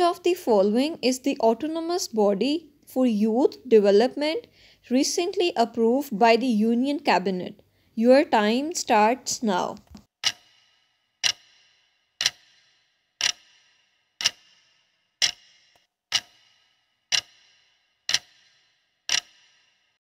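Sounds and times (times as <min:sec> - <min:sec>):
clock ticks with ringing tail: 0:10.2 - 0:20.0.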